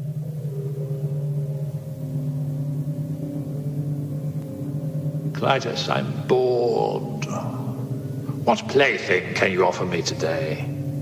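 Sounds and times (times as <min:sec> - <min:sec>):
low ominous musical drone: 0:00.0 - 0:11.0.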